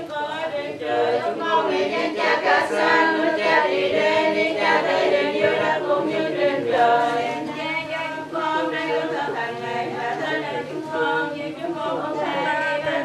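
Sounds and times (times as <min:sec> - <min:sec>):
group chanting prayers in unison: 0:00.0 - 0:13.0.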